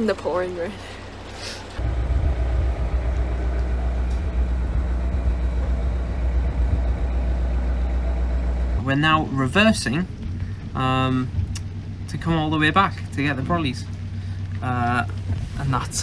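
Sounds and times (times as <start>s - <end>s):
boat diesel engine running: 0.0s - 16.0s.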